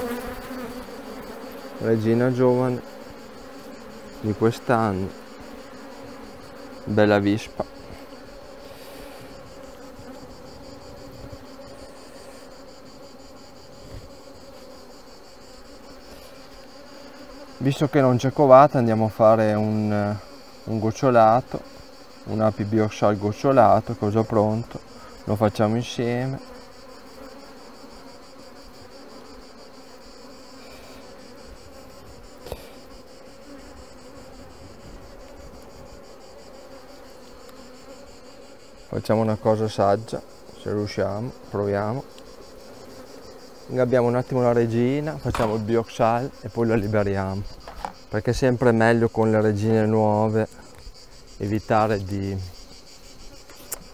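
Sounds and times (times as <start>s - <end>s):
honeybees buzzing: 0.0s - 53.9s.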